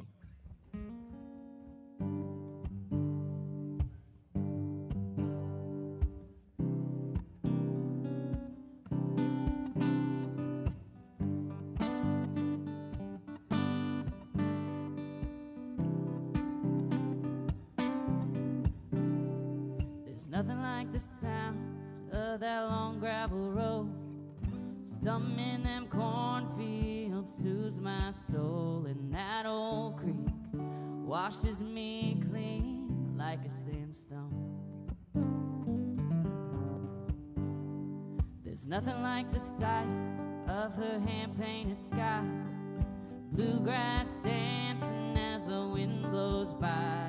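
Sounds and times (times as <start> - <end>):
acoustic guitar strumming: 0.0 - 47.0
person singing: 20.0 - 34.5, 38.4 - 47.0.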